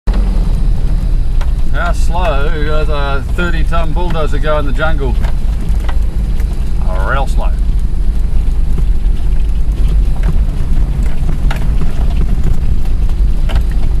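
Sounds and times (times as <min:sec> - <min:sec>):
vehicles rumbling on dirt track: 0:00.1 - 0:14.0.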